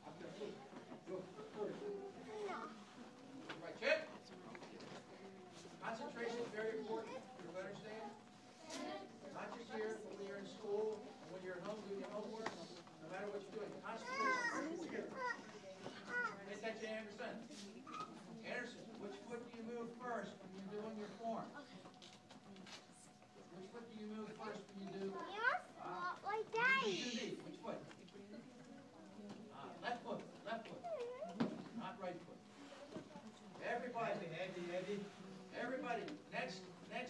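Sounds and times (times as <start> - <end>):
children chattering: 13.8 - 16.5.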